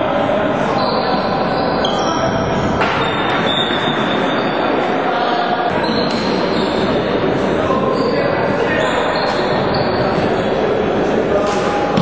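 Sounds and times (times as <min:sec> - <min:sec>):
echoing crowd voices: 0:00.0 - 0:12.0
short high shoe squeaks: 0:00.8 - 0:02.3, 0:03.0 - 0:04.6, 0:05.8 - 0:07.0, 0:07.9 - 0:10.5.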